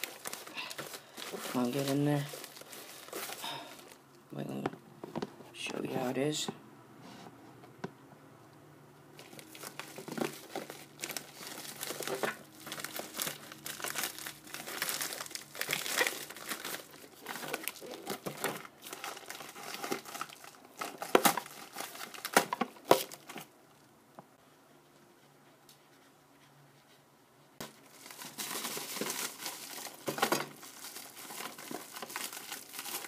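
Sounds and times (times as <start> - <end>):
plastic packaging crinkling: 0.0 - 4.0, 9.2 - 23.5, 27.6 - 33.0.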